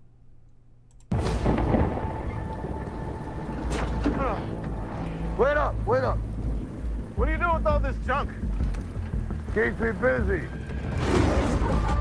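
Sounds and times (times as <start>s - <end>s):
trailer soundtrack rushing noise: 1.1s - 12.0s
man speaking: 7.2s - 8.4s, 9.5s - 10.6s.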